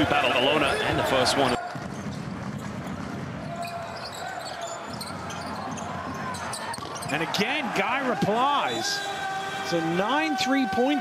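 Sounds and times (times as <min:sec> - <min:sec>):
sneakers squeaking on court: 0:00.6 - 0:07.4
basketball dribbling: 0:04.9 - 0:07.2.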